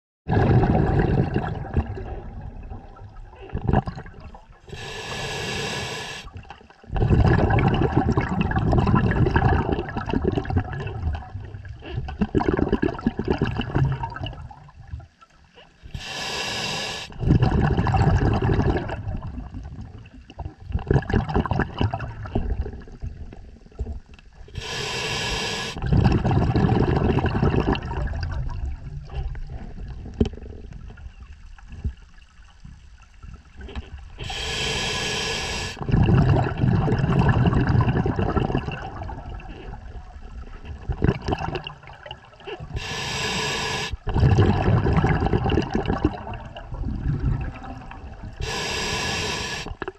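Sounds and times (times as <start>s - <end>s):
exhaled bubbles rumbling: 0.3s - 5.0s, 6.2s - 15.2s, 17.1s - 25.0s, 25.8s - 34.8s, 35.6s - 49.9s
diver inhaling through regulator: 4.7s - 6.4s, 15.8s - 17.3s, 24.5s - 25.9s, 34.2s - 36.2s, 42.6s - 44.2s, 48.4s - 49.9s.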